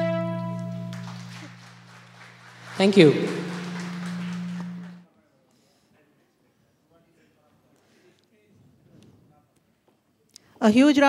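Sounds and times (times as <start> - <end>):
sound system low hum: 0.0 - 5.0.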